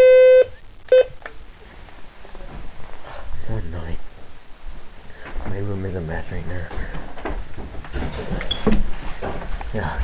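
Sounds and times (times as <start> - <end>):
faint rustling: 1.4 - 10.0.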